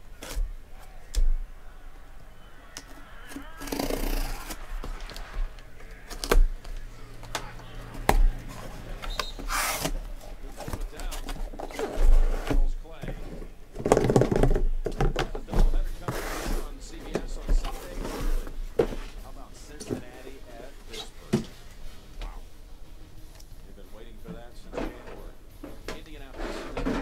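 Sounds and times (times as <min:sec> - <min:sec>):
boxes sliding and scraping: 0:07.9 - 0:13.5, 0:15.5 - 0:19.2, 0:25.6 - 0:27.0.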